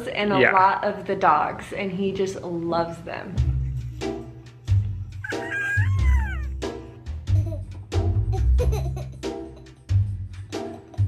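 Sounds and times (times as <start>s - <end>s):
background music with steady beat: 3.2s - 11.0s
baby squealing: 5.2s - 6.6s.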